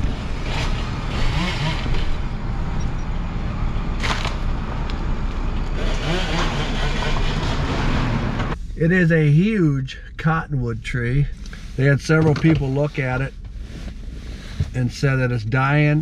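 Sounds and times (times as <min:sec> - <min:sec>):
car road and wind noise: 0:00.0 - 0:08.8, 0:10.2 - 0:16.0.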